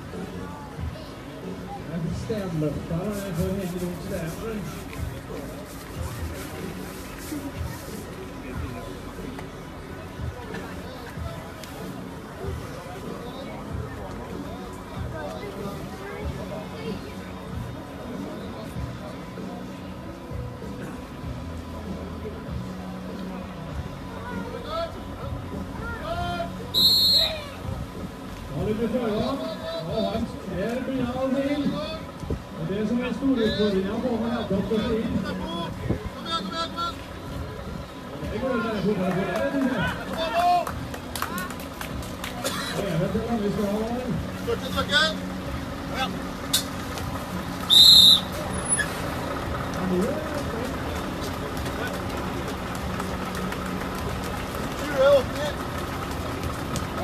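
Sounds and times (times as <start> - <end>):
crowd chatter: 0.0 - 57.0
loud shrill whistle blast: 26.7 - 27.5, 47.7 - 48.9.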